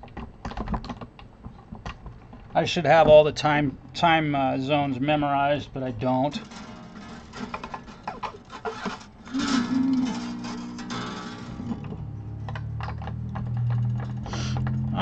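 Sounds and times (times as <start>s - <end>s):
plucked guitar strings ringing: 6.3s - 14.2s
guitar handling clicks: 6.4s - 14.7s.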